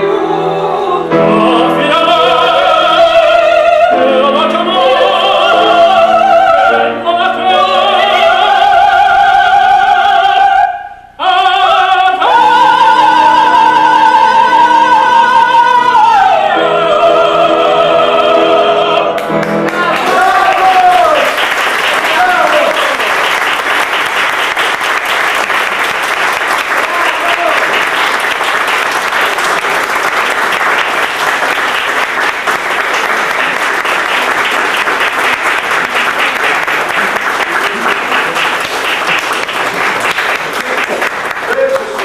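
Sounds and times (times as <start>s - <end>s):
audience applauding: 19.2s - 42.0s.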